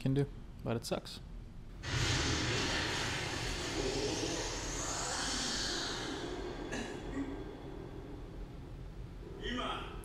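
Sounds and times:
steady rushing noise: 1.8 - 9.1.

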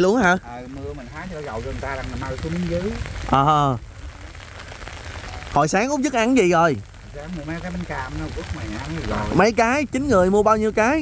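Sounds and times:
steady rain falling: 0.0 - 11.0.

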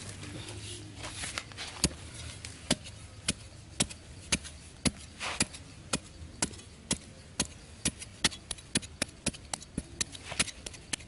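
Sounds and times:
metal bar striking dry soil: 0.0 - 11.0.

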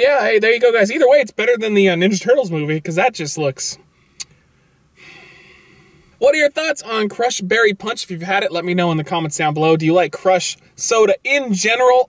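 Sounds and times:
person breathing out: 4.0 - 6.2.

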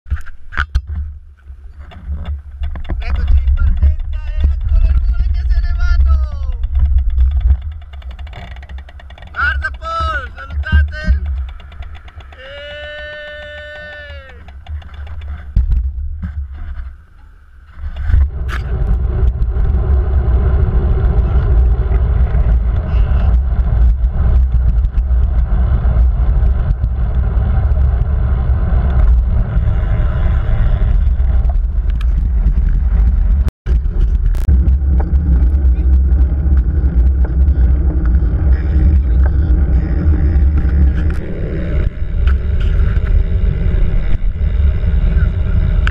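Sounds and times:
wind buffeting microphone: 1.8 - 16.5, 17.8 - 45.9.

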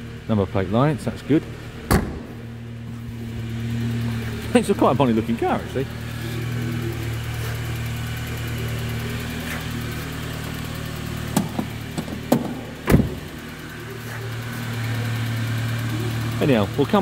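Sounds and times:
car engine idling: 0.0 - 17.0.

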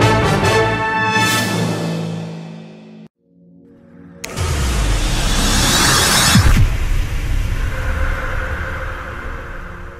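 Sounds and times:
deep rumble: 4.3 - 9.9.

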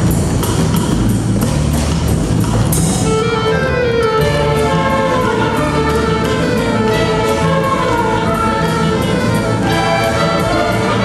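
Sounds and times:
youth orchestra playing: 2.8 - 11.0.

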